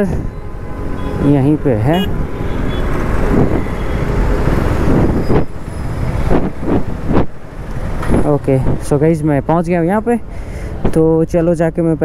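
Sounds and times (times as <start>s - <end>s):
surrounding traffic: 0.0s - 12.0s.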